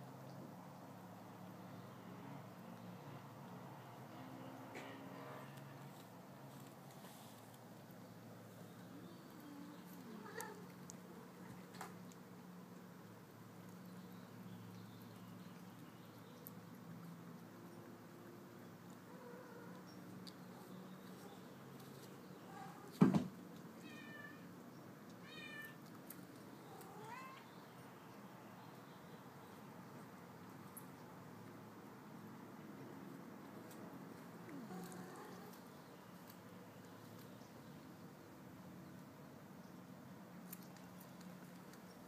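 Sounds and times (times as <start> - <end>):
cat meowing softly: 10.0 - 10.7, 23.8 - 24.5, 25.2 - 25.8, 26.7 - 27.5.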